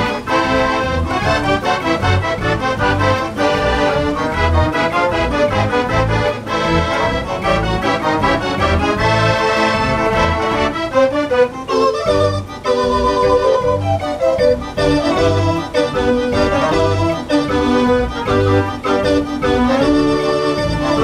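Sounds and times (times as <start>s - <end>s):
dance organ playing a tune: 0.0s - 21.0s.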